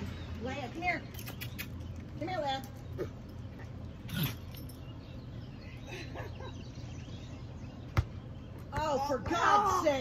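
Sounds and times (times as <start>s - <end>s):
ball thudding on concrete: 7.9s - 9.4s.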